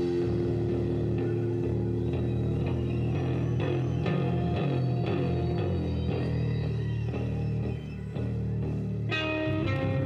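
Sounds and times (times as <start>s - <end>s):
drum kit and cymbals: 0.0s - 7.6s
bass guitar: 0.0s - 10.0s
electric guitar: 0.0s - 10.0s.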